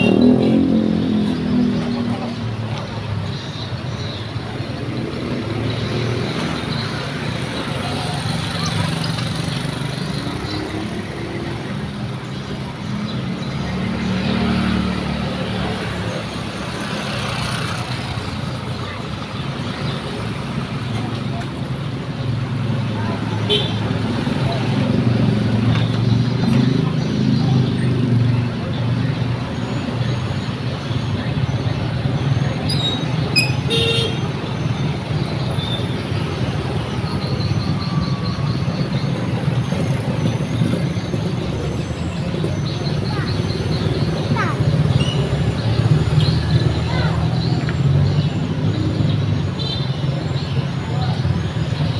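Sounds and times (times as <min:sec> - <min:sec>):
car engines passing: 0:00.0 - 0:51.9
heavy vehicle engine: 0:00.0 - 0:51.9
motorbike engines passing: 0:00.0 - 0:51.9
road noise: 0:00.0 - 0:51.9.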